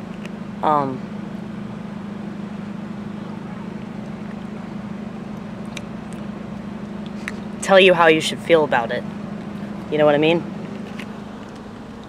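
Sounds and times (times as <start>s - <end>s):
car engine hum with hiss: 0.0s - 12.0s.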